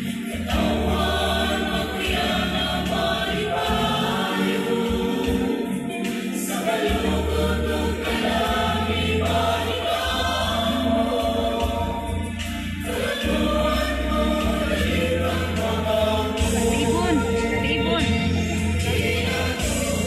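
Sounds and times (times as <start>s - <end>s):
choir singing sustained chords: 0.0s - 20.0s.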